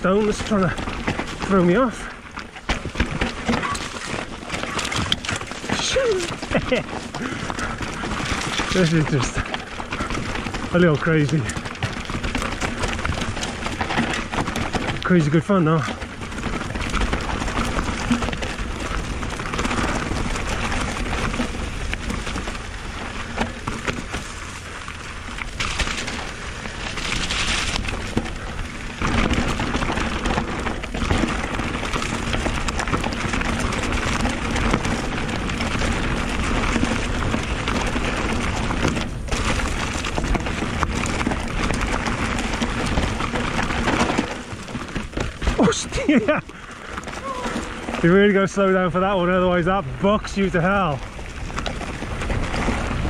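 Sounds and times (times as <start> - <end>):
bike rattling and clattering: 0.0 - 53.0
tyres crunching over dirt and stones: 0.0 - 53.0.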